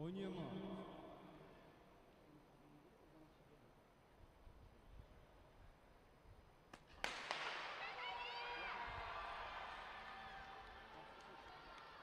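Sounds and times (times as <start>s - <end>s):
spectators shouting and cheering: 7.7s - 12.0s.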